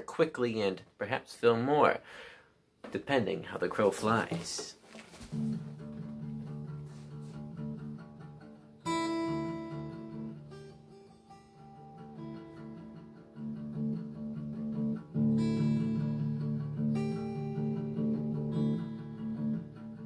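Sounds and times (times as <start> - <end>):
acoustic guitar strummed chords: 5.3 - 20.0.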